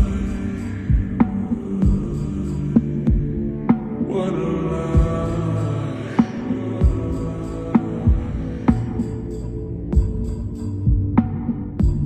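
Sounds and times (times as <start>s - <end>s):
sustained low chords: 0.0s - 12.0s
deep bass drum thumps: 3.0s - 3.8s, 5.0s - 5.4s, 10.0s - 12.0s.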